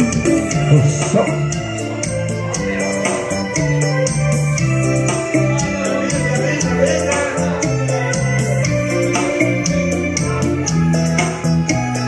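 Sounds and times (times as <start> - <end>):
electronic keyboard melody: 0.0 - 12.0
held bass notes: 0.0 - 12.0
light high percussion beat: 0.0 - 12.0.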